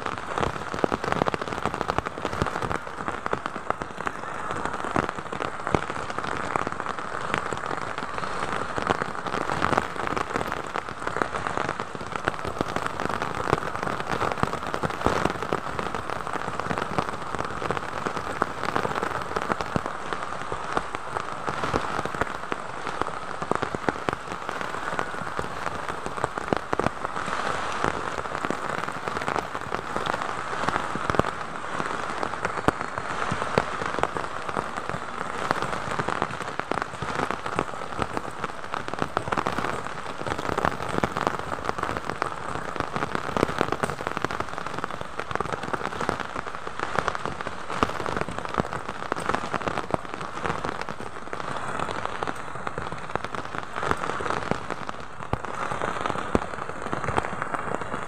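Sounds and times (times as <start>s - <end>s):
rain drops tapping: 0.0s - 27.2s, 27.8s - 47.4s
heavy rain on foliage: 0.0s - 58.0s.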